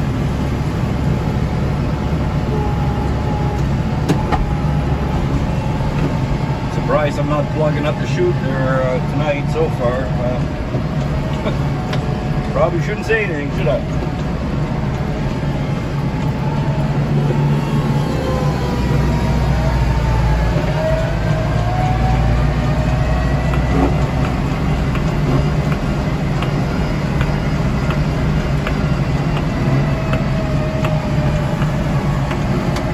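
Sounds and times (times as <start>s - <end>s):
diesel tractor engine running: 0.0s - 32.9s.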